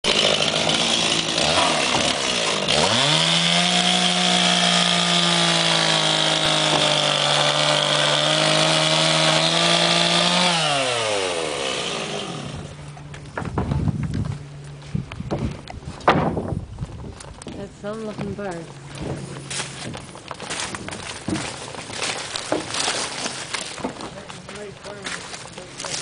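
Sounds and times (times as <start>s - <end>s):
chainsaw cutting wooden boards: 0.0s - 14.2s, 19.0s - 26.0s.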